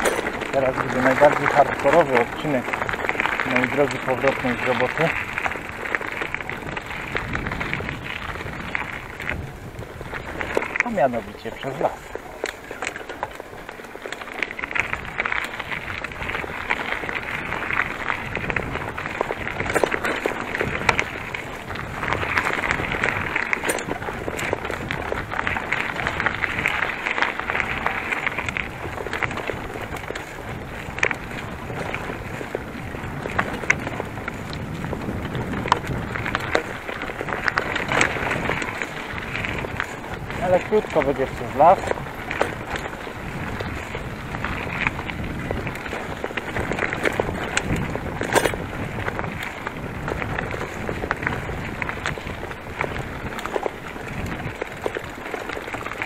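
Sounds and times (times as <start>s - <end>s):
bicycle tyres rumbling on ground: 0.0s - 56.0s
bike knocking and rattling: 0.0s - 56.0s.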